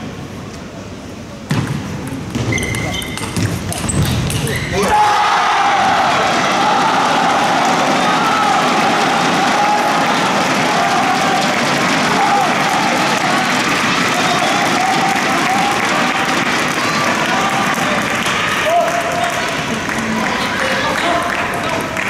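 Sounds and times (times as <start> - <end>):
table tennis ball clicking: 2.0 - 4.5
crowd shouting and cheering: 2.5 - 22.0.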